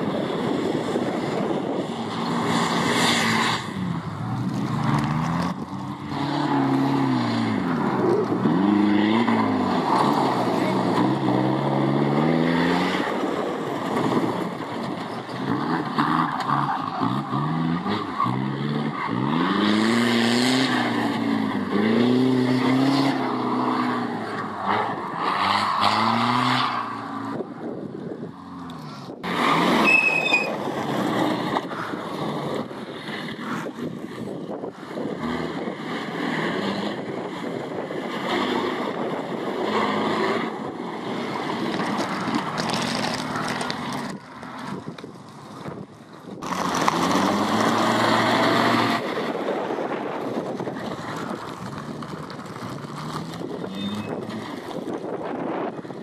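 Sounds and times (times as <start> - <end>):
off-road engines revving: 0.1 - 56.0.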